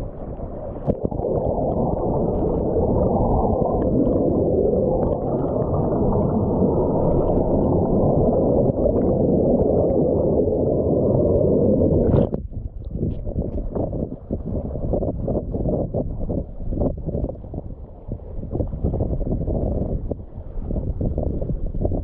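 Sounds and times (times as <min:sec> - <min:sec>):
bubbling water: 0:00.0 - 0:17.7, 0:18.4 - 0:22.0
wind buffeting microphone: 0:00.0 - 0:22.0
water splash: 0:11.9 - 0:14.1.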